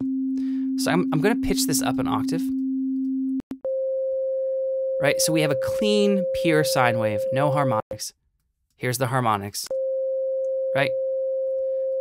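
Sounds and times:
steady synth sine tone: 0.0 - 7.6.

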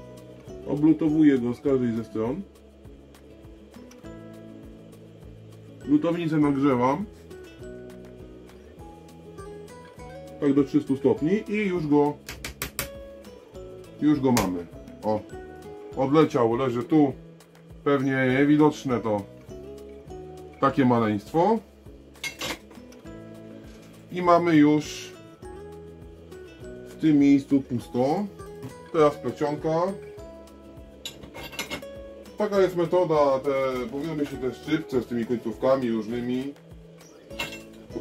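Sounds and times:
quiet guitar music: 0.0 - 38.0
small metal tools clinking: 31.0 - 31.8, 37.3 - 37.8.

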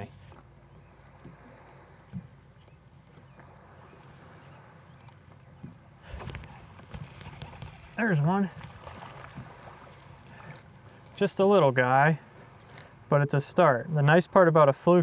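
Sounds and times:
lake water around a boat: 0.0 - 15.0.

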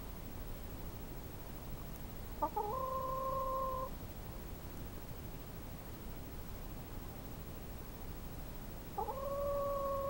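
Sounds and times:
chicken long call: 2.4 - 3.9, 9.0 - 10.0.

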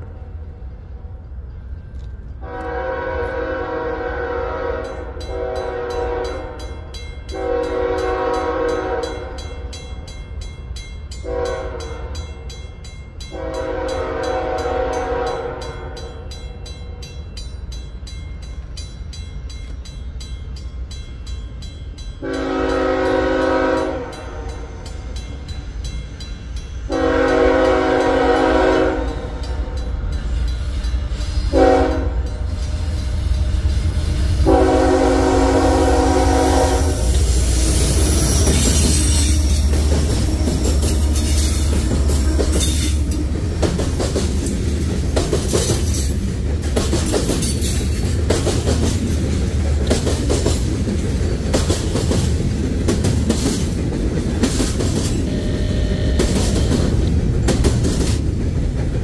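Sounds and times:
train rumbling: 0.0 - 59.0
locomotive air horn blasts: 2.4 - 6.6, 7.3 - 9.4, 11.2 - 12.2, 13.3 - 16.0, 22.2 - 24.7, 26.9 - 29.4, 31.4 - 32.4, 34.4 - 39.6, 55.2 - 57.0
crossing bell ringing: 4.8 - 51.8, 54.5 - 57.2.

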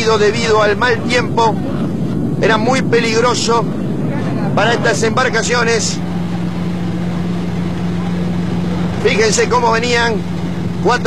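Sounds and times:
powerboat engine drone: 0.0 - 11.0.

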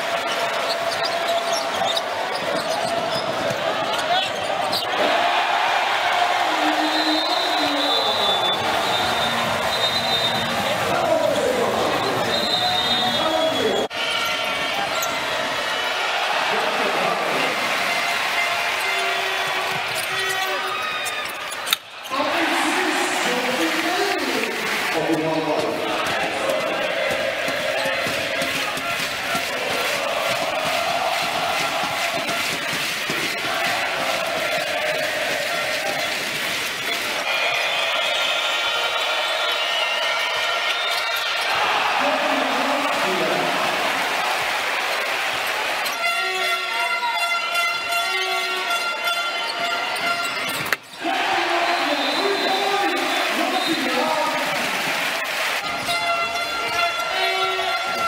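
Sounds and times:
arena crowd noise: 0.0 - 58.0.

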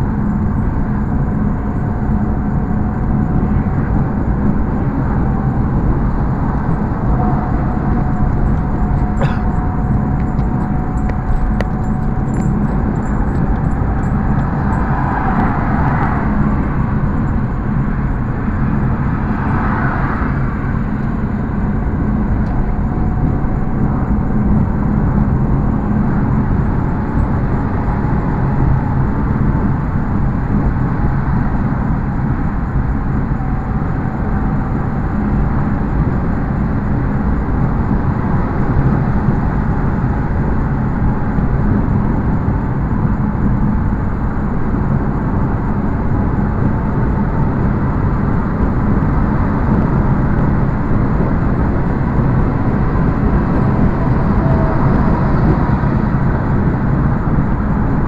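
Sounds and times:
car engine drone and road noise: 0.0 - 58.0.

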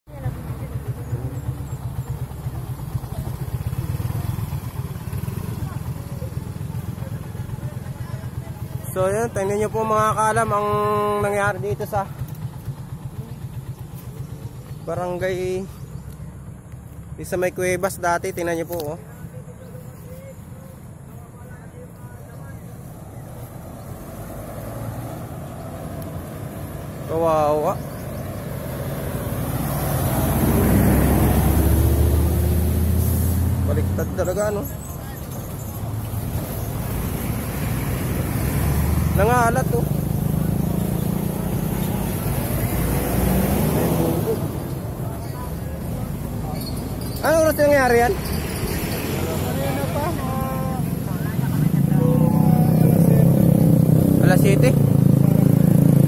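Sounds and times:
vehicle engine low throb: 0.1 - 18.4, 19.0 - 47.1.

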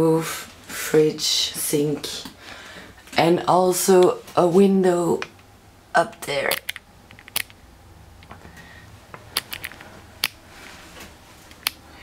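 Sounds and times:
faint low hum: 0.0 - 12.0
sharp clicks: 6.1 - 7.6.

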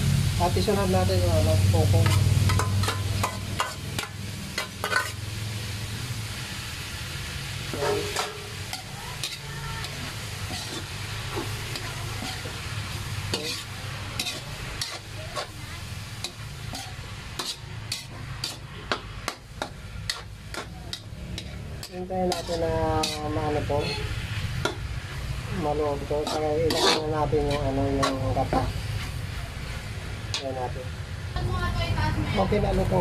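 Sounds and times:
pork sizzling in a wok: 0.0 - 33.0
metal spatula scraping a pan: 1.9 - 5.3, 7.7 - 30.6.

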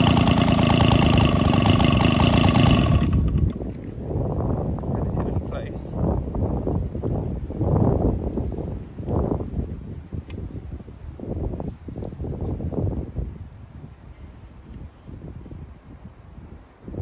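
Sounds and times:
stationary engine running unevenly: 0.0 - 3.6
wind on microphone: 0.0 - 17.0.

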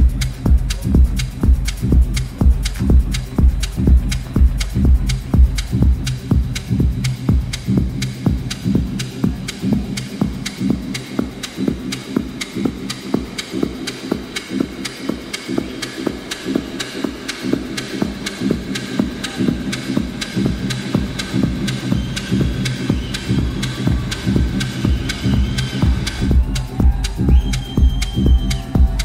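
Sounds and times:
minimal techno beat: 0.0 - 29.0.

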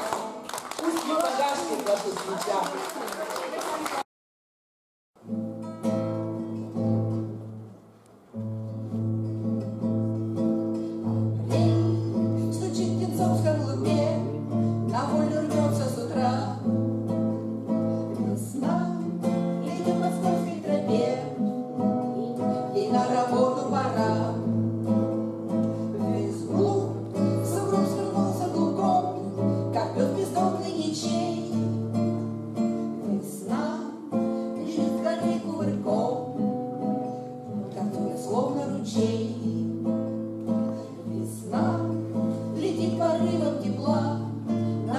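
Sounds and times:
acoustic guitar strumming: 5.2 - 44.9.

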